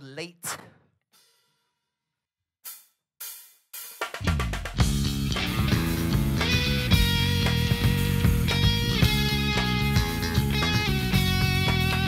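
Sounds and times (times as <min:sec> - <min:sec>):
rock band playing: 0:04.2 - 0:12.0.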